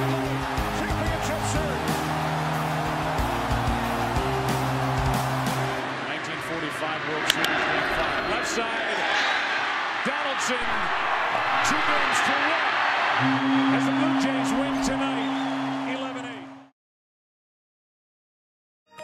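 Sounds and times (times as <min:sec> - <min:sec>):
background music: 0:00.0 - 0:06.0
ballpark crowd noise: 0:00.0 - 0:16.7.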